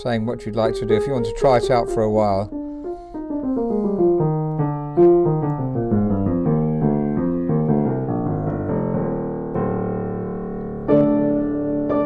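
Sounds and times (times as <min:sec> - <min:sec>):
grand piano playing: 0:00.0 - 0:12.0.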